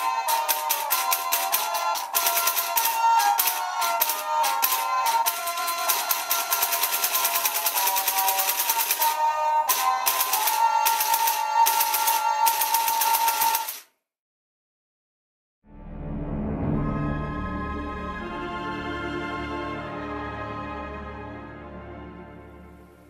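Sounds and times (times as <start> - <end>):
fast even clicking: 0.0 - 13.9
tinny electronic toy music: 0.0 - 13.9.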